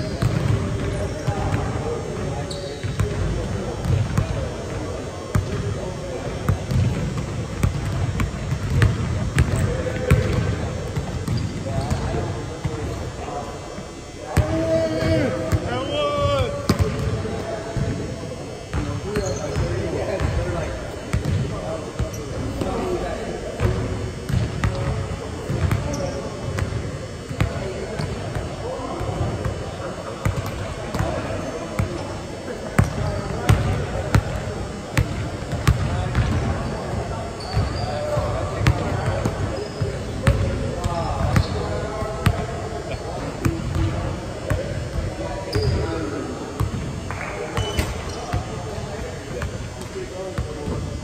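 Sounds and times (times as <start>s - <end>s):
basketballs bouncing on hardwood floor: 0.2s - 0.7s, 6.5s - 12.9s, 16.3s - 17.2s, 23.6s - 26.0s.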